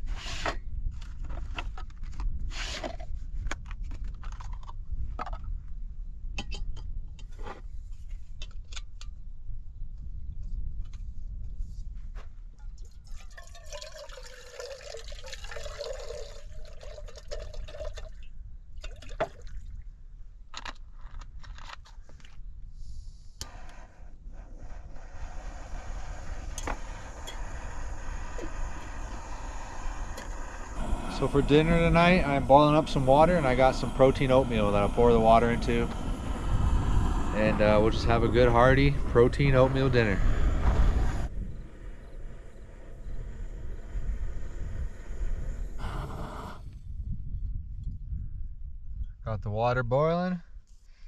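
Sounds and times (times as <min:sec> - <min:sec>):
water pouring into pot: 0:13.1 - 0:18.2
gas stove burner hissing: 0:23.4 - 0:46.7.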